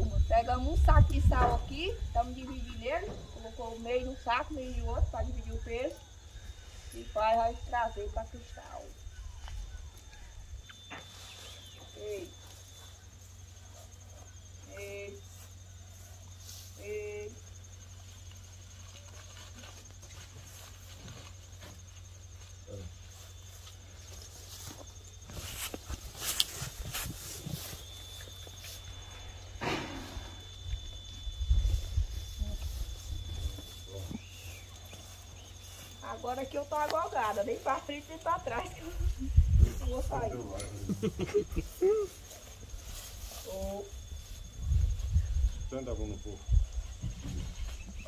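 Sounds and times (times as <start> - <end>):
high insect drone: 0.0 - 48.0.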